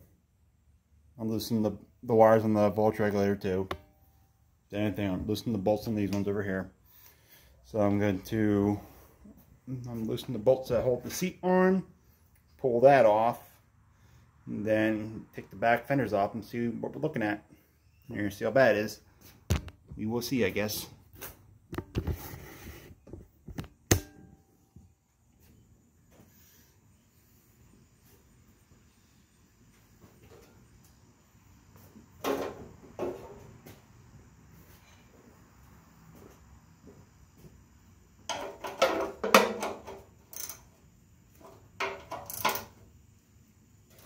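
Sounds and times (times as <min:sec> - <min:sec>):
tools and metal parts clanking: 0:38.3 - 0:40.6, 0:41.4 - 0:42.8.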